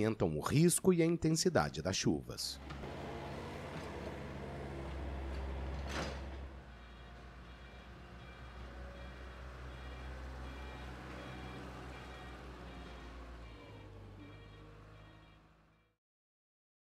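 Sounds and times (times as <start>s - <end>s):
diesel engine rumbling: 0.0s - 16.0s.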